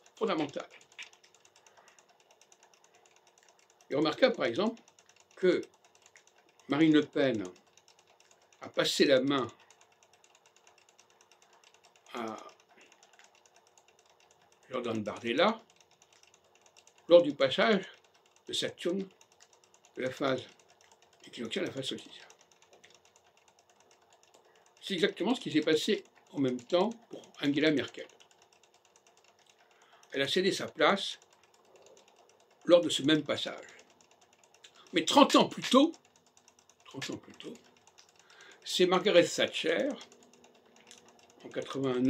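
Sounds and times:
fast even ticking: 0:00.0 - 0:42.0.

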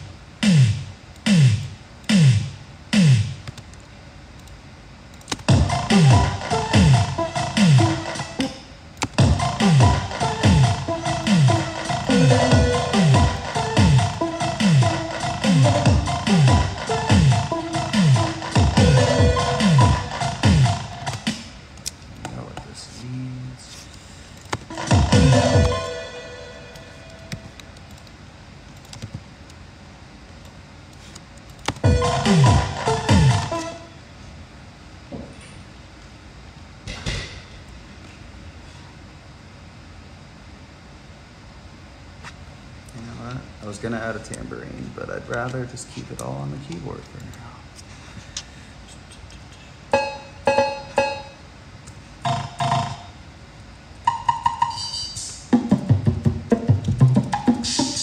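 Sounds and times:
electronic kick drums: 0:00.0 - 0:03.4, 0:05.4 - 0:21.5, 0:24.6 - 0:25.9, 0:31.8 - 0:33.6, 0:55.5 - 0:58.0.

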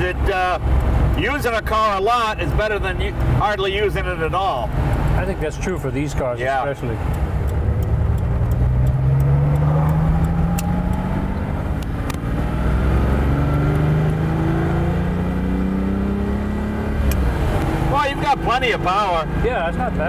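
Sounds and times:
car engine accelerating: 0:00.0 - 0:20.0.

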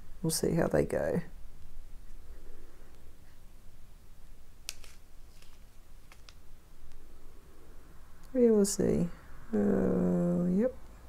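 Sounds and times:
plastic bag clicks and crinkles: 0:04.6 - 0:06.5.

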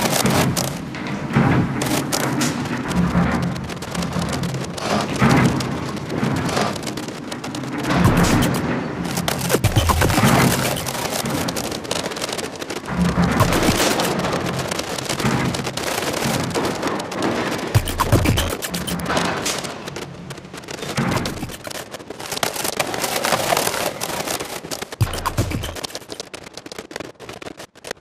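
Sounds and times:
crackling electronic noise: 0:00.0 - 0:00.8, 0:01.8 - 0:28.0.

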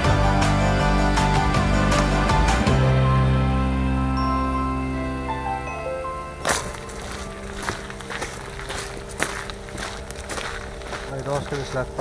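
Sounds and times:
soft music: 0:00.0 - 0:12.0
footsteps on gravel: 0:06.4 - 0:12.0.

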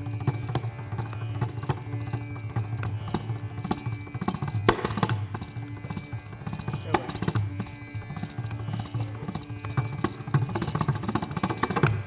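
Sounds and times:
mridangam drumming: 0:00.0 - 0:12.0.

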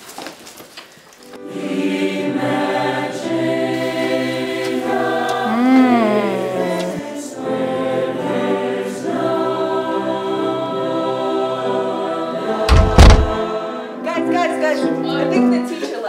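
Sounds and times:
choir singing in harmony: 0:01.3 - 0:15.3.

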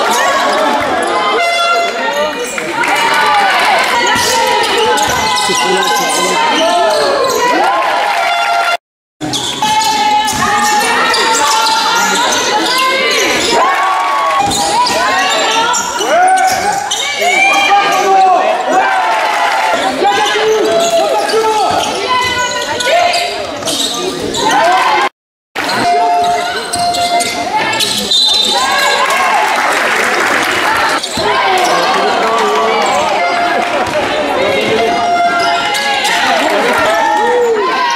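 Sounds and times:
voices calling out: 0:00.0 - 0:07.8, 0:09.2 - 0:37.9
basketball bouncing on court: 0:14.4 - 0:15.0.

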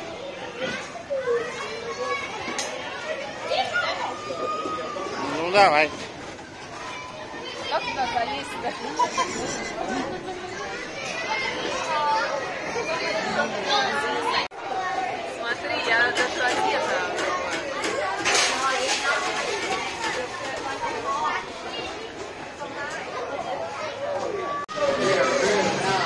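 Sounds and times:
indistinct chatter of voices: 0:00.0 - 0:26.0.

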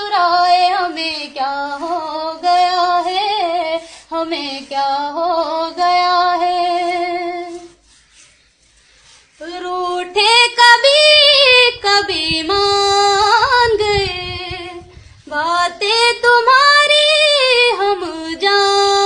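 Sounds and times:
woman singing unaccompanied: 0:00.0 - 0:07.8, 0:09.4 - 0:19.0.

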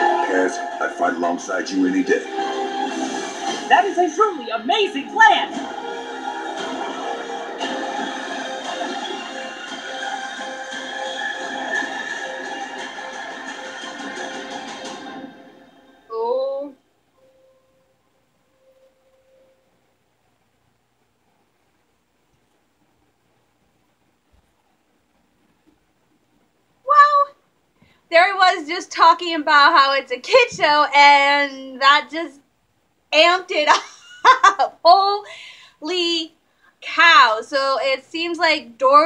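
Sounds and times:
trailer music through a speaker: 0:00.0 - 0:16.1.

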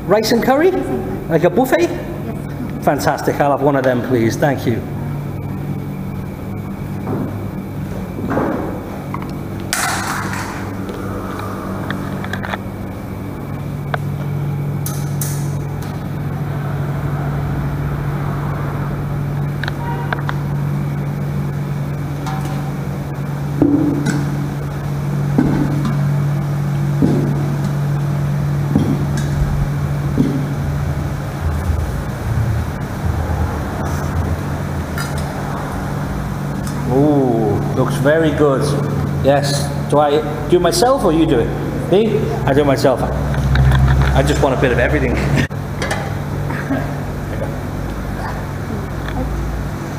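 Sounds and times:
steady low hum: 0:00.0 - 0:49.9.

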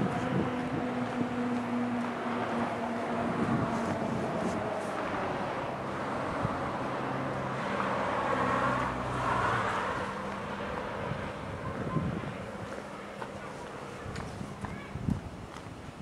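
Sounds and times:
wind on microphone: 0:00.0 - 0:08.1, 0:09.2 - 0:12.9, 0:13.8 - 0:16.0
vehicle passing: 0:00.0 - 0:14.6
road traffic engine hum: 0:00.0 - 0:16.0.

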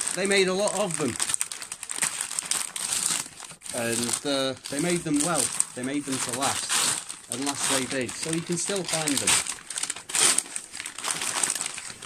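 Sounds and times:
paper wrapping crinkling and tearing: 0:00.0 - 0:12.0.

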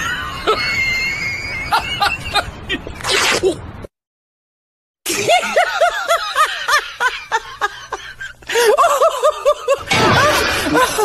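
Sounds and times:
high-pitched laughter: 0:00.0 - 0:03.6, 0:05.1 - 0:11.0.

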